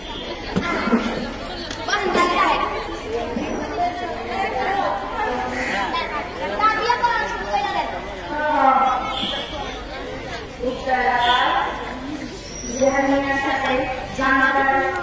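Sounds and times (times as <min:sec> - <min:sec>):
girls' voices chattering: 0:00.0 - 0:15.0.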